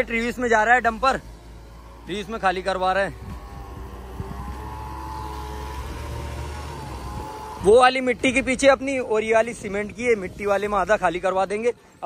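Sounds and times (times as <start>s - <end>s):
high whine: 0.0s - 11.5s
diesel truck engine running: 0.0s - 12.0s.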